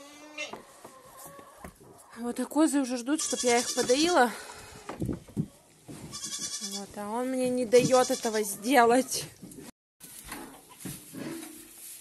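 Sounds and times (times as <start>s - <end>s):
rustling: 10.0s - 12.0s.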